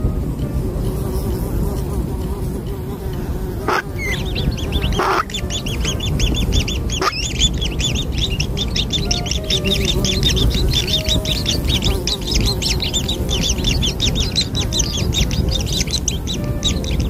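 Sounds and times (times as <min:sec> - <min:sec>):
steady low rumble: 0:00.0 - 0:17.0
nestling birds chirping: 0:02.3 - 0:17.0
short sweeping bird calls: 0:03.7 - 0:17.0.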